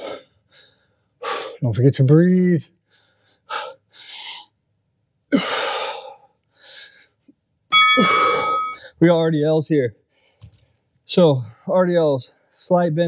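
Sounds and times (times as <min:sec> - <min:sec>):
man exhaling and gasping: 0:00.0 - 0:01.6, 0:05.3 - 0:07.1
short ringing tone: 0:07.7 - 0:08.8.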